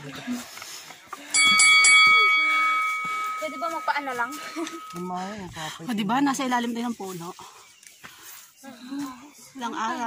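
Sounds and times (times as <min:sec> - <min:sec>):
bell chime ringing: 0:01.3 - 0:05.3.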